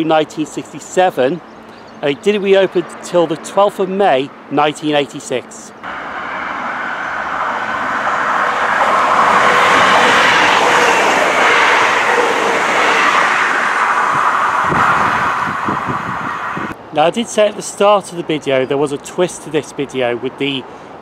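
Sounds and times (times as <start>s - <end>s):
diesel train passing at speed: 5.8s - 16.8s
train wheels: 6.2s - 16.7s.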